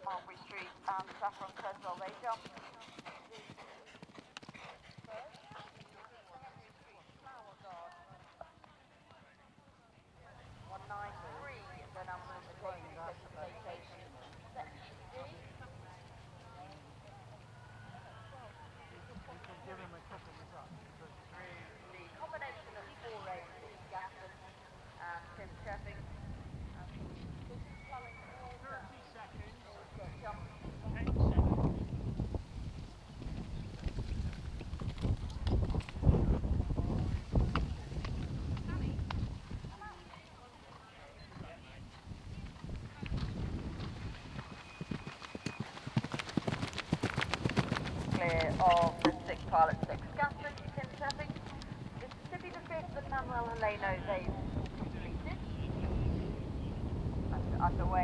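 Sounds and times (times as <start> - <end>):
people chattering: 0.0 - 2.4, 5.0 - 26.1
horse hoofbeats on grass: 0.0 - 8.8, 41.4 - 54.7
people talking indistinctly: 48.2 - 56.0.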